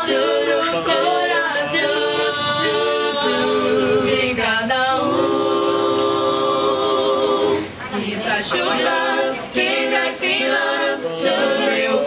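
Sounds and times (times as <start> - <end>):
vocal group singing a cappella: 0.0 - 12.0.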